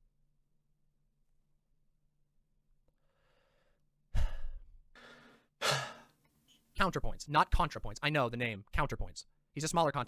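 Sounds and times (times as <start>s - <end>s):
person sighing: 4.1s - 6.1s.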